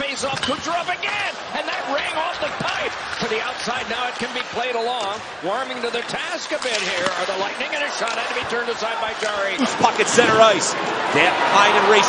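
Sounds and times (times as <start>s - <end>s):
hockey sticks and puck clacking: 0.0s - 10.4s
arena crowd noise: 0.0s - 12.0s.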